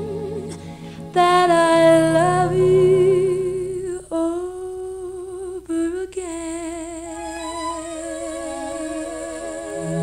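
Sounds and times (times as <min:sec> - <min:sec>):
wordless vocal ballad with vibrato: 0:00.0 - 0:10.0.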